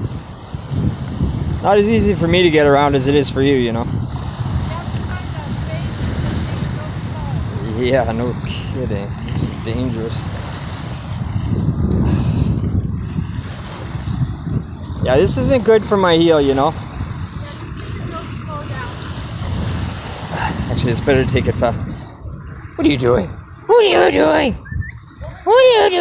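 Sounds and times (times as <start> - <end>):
ocean surf: 0.0 - 26.0
wind on microphone: 0.0 - 26.0
distant voices: 13.2 - 26.0.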